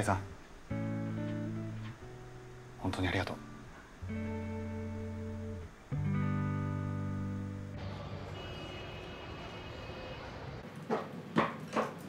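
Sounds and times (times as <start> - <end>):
low city hum: 0.0 - 10.7.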